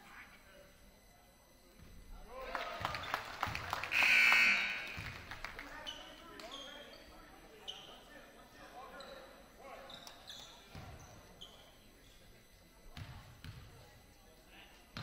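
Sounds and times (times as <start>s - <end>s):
people chattering: 0.0s - 15.0s
short shrill sound: 3.9s - 5.0s
sneakers squeaking: 3.9s - 5.2s, 8.9s - 11.8s.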